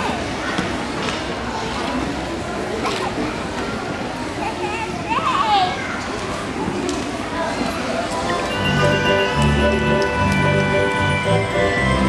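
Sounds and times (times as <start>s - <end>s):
children chattering: 0.0s - 12.0s
child's high voice: 4.4s - 6.1s.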